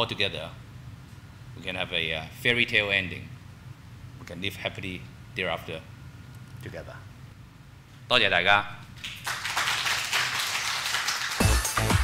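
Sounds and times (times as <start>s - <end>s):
audience applauding: 9.0s - 12.0s.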